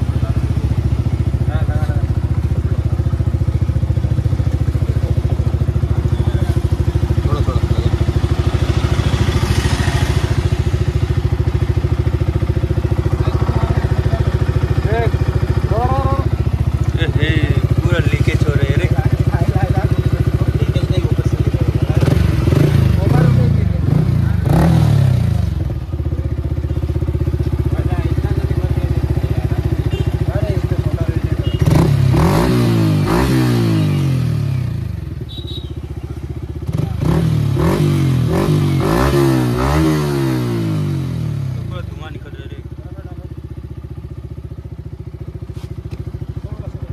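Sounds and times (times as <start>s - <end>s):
motorcycle engine idling and revving: 0.0s - 46.9s.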